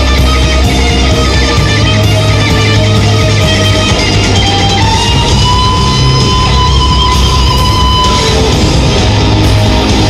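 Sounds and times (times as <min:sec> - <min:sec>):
bass: 0:00.0 - 0:10.0
distorted electric guitars: 0:00.0 - 0:10.0
drums: 0:00.0 - 0:10.0
high held note: 0:01.5 - 0:10.0.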